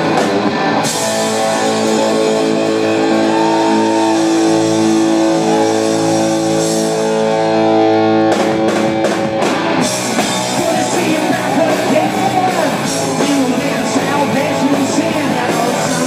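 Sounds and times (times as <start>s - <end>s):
rock band with drums: 0.0s - 16.0s.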